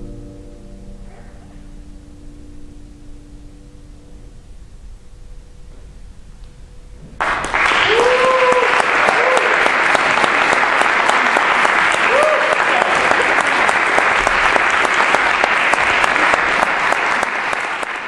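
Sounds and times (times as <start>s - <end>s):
audience applauding: 7.2s - 18.0s.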